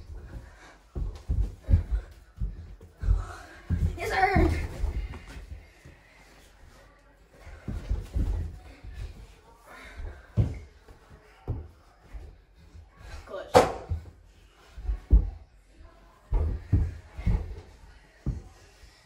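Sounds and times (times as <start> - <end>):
thuds of feet on carpet: 0.0 - 6.0, 7.4 - 18.8.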